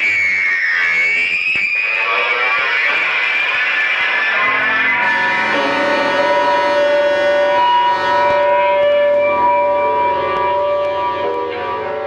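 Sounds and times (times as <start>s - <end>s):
rock band droning chord: 4.4s - 12.0s.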